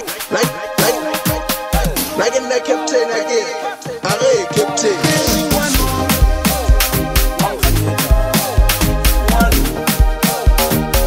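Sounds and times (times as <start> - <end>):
held synth tones: 5.1 - 9.8
swooping pitch-bending melodic lines: 5.3 - 8.1.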